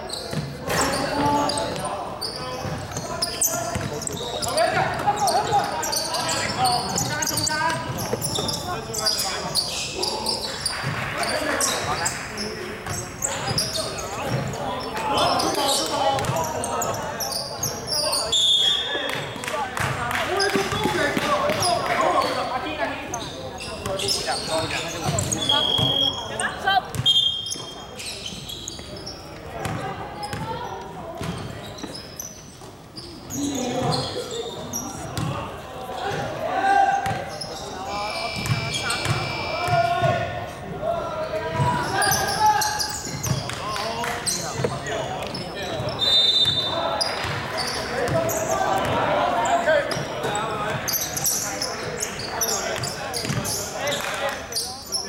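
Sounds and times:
basketball bouncing on hardwood court: 0:03.7 - 0:03.9
voices calling out: 0:33.0 - 0:55.0.

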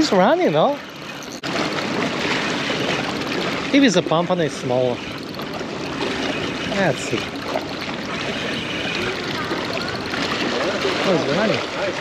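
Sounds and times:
water lapping against rocks: 0:00.0 - 0:12.0.

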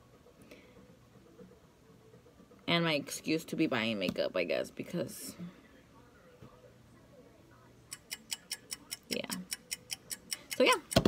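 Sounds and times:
rapid even ticking: 0:07.9 - 0:11.0.

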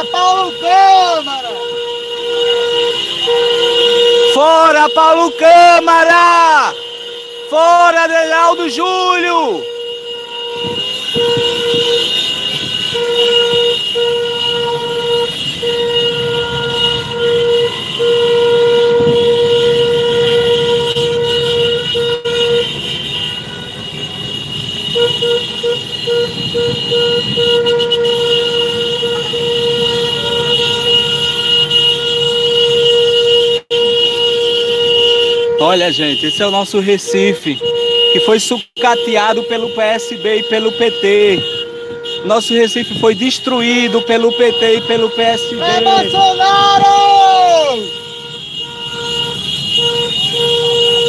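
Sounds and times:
short horn honks: 0:00.0 - 0:05.8, 0:06.7 - 0:51.0
engine and road rumble: 0:00.0 - 0:51.0
vehicle horn blaring: 0:00.0 - 0:51.0.

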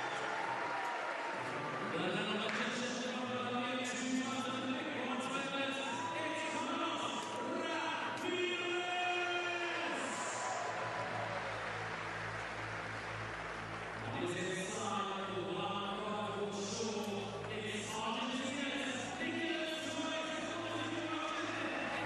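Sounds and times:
amplified announcer voice: 0:01.9 - 0:10.5, 0:14.0 - 0:22.0.

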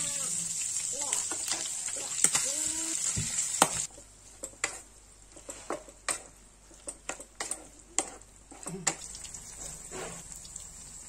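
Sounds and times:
food sizzling in hot oil: 0:00.0 - 0:03.9, 0:08.9 - 0:11.0.

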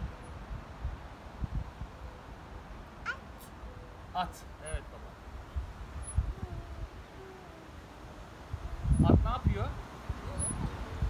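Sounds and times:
wind rumble on microphone: 0:00.0 - 0:02.8, 0:05.2 - 0:11.0
toddler squealing: 0:03.0 - 0:03.5, 0:06.0 - 0:08.2, 0:10.2 - 0:11.0.

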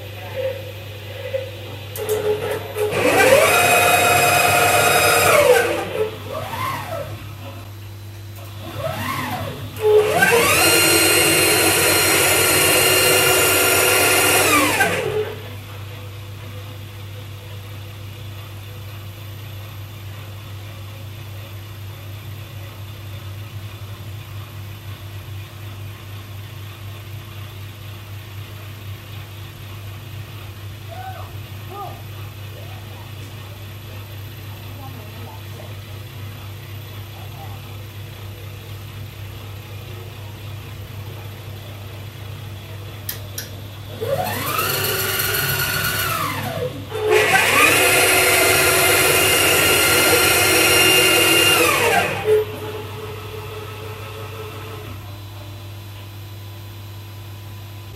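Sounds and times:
stepper motors whining: 0:01.2 - 0:07.6, 0:08.4 - 0:15.6, 0:43.1 - 0:53.6.

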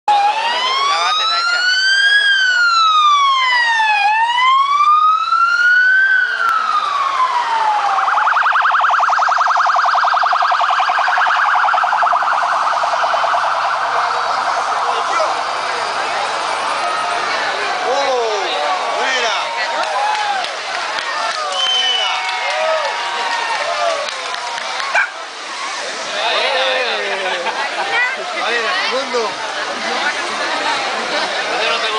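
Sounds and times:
police motorcycle siren: 0:00.1 - 0:17.7
crowd noise: 0:00.1 - 0:31.9
voices: 0:05.3 - 0:31.9.

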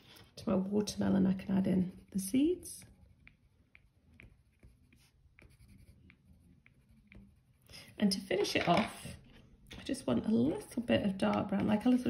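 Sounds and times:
pencil tip dabbing on paper: 0:01.9 - 0:08.5.

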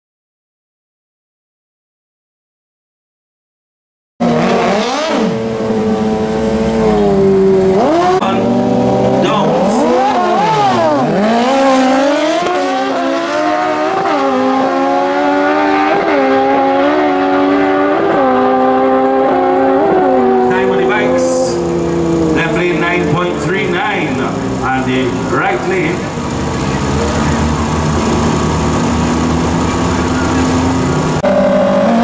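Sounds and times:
motorcycle engines revving: 0:04.2 - 0:32.0
motorcycles accelerating hard: 0:04.2 - 0:32.0.

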